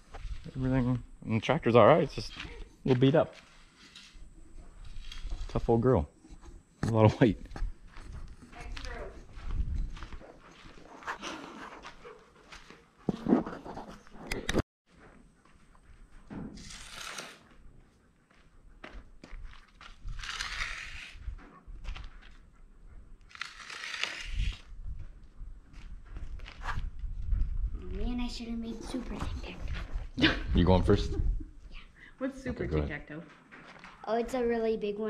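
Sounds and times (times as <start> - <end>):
footsteps on dirt floor: 0.0 - 0.9, 2.2 - 14.2, 14.9 - 16.7, 17.4 - 20.3, 21.1 - 23.0, 24.6 - 30.8, 32.4 - 34.6
stick scraping through dirt: 4.8 - 5.7, 16.5 - 17.5, 19.5 - 21.4, 23.3 - 24.8.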